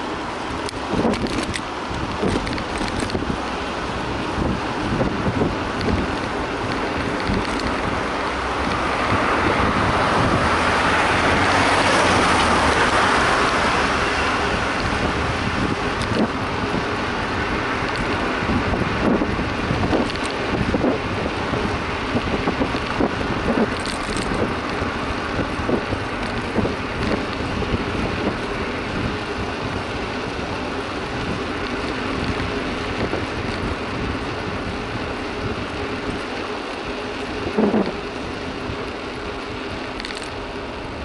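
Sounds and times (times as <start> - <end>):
bicycle road rumble: 0.0 - 41.0
wind buffeting microphone: 0.0 - 41.0
large vehicle passing: 6.4 - 31.5.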